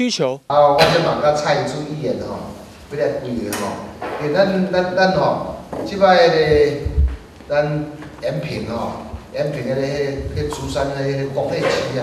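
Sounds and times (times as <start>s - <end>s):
man speaking into a microphone: 0.0s - 12.0s.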